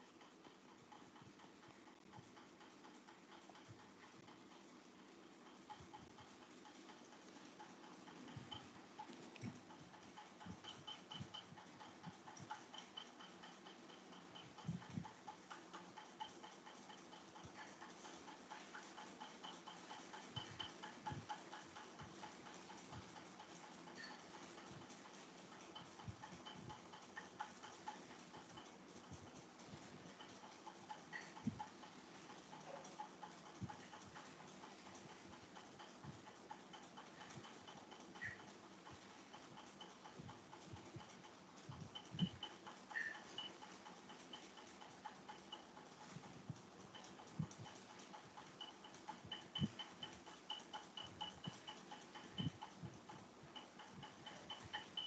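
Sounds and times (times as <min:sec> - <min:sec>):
light irregular clicks: 0:00.0 - 0:55.0.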